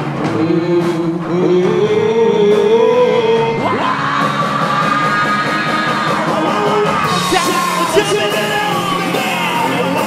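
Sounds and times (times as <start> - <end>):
bass guitar: 0.0 - 10.0
drums: 0.0 - 10.0
electric guitars: 0.0 - 10.0
man singing a long high note: 0.2 - 4.2.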